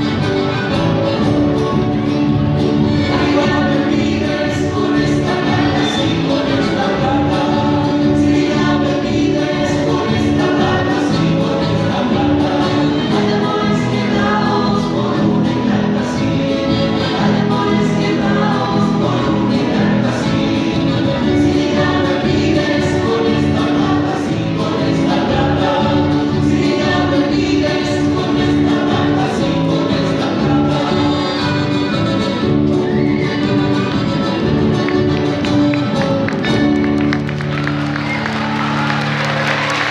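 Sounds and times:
group singing folk song: 0.0s - 39.9s
instrumental accompaniment: 0.0s - 39.9s.

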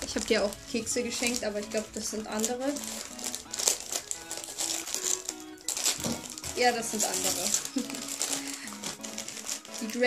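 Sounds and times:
background music with held notes: 0.0s - 10.0s
packaging crinkling and rustling: 0.0s - 10.0s.

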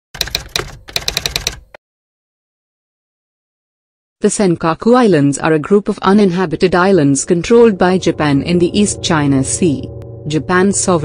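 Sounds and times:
typewriter keys clacking: 0.2s - 1.8s.

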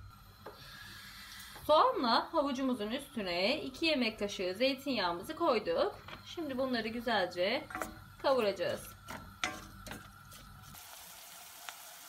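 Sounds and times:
vegetables sizzling: 6.5s - 12.0s.

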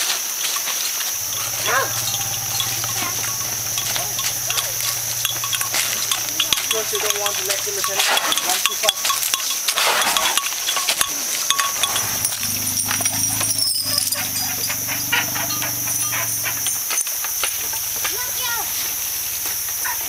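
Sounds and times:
high-pitched drone: 1.2s - 7.9s, 11.8s - 16.8s
low steady hum: 1.2s - 7.9s.

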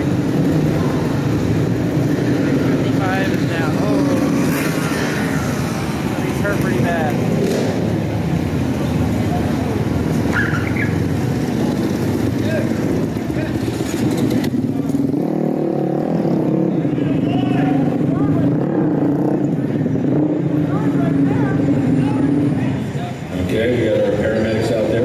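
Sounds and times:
crowd voices: 0.0s - 25.0s
motorcycle engines idling and blipping: 0.0s - 25.0s.

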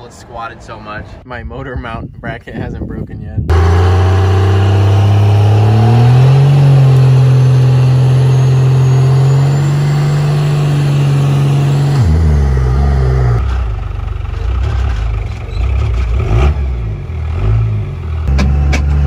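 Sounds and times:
diesel engine revving: 3.5s - 19.0s.

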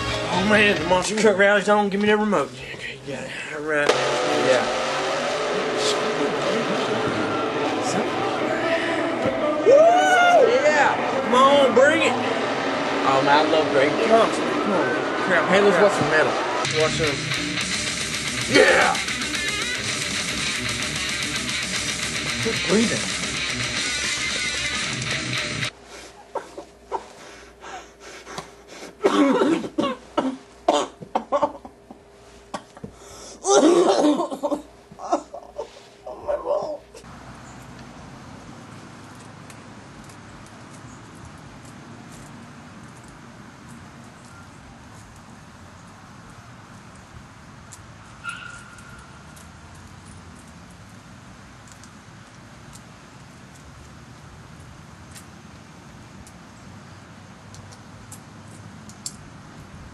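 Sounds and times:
monster truck engines revving: 3.8s - 9.5s, 10.6s - 25.7s
person's loud vocal bursts: 18.4s - 19.1s.

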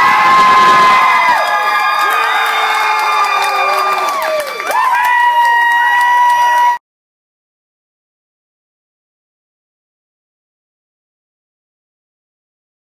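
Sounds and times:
crowd cheering and clapping: 0.0s - 6.8s.

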